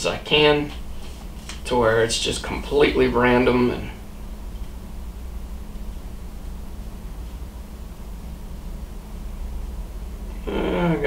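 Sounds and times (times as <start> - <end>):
man talking: 0.0 - 0.8, 1.6 - 4.0, 10.4 - 11.0
low hum: 0.0 - 11.0.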